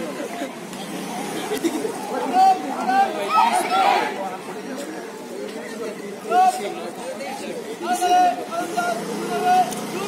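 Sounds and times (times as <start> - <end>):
voices chattering: 0.0 - 10.0.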